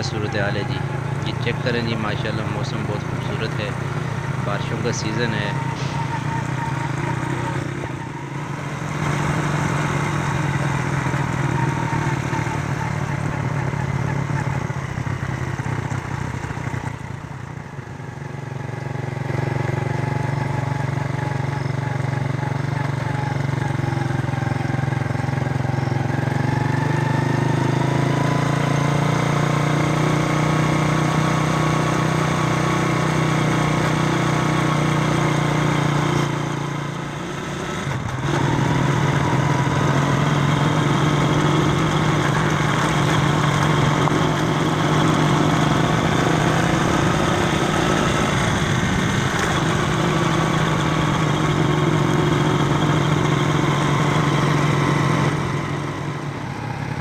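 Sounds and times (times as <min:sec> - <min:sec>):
vehicle engine running: 0:00.0 - 0:57.0.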